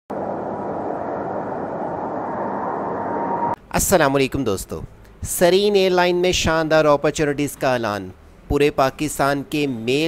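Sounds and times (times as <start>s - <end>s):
jet engine roar: 0.1s - 3.6s
thin steady whine: 0.1s - 3.6s.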